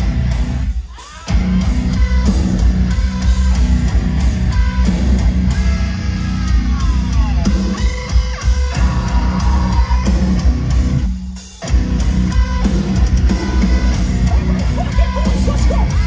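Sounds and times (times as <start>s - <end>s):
heavy metal band playing live: 0.0s - 16.0s.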